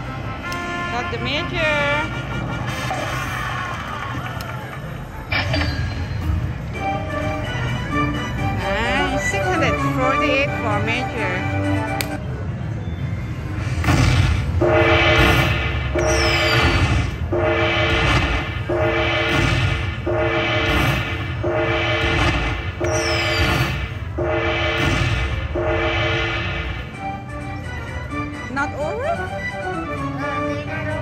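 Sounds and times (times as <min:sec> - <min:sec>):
steady low rumble: 0:13.3 - 0:28.2
slot machine horn-like chord: 0:14.6 - 0:16.6, 0:17.2 - 0:22.2, 0:24.2 - 0:27.2.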